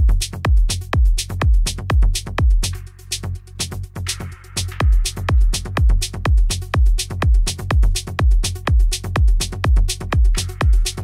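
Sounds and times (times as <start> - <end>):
pounding kick drum: 0.0 - 2.8, 4.6 - 11.0
hi-hats ticking: 0.0 - 11.0
house music: 0.0 - 11.0.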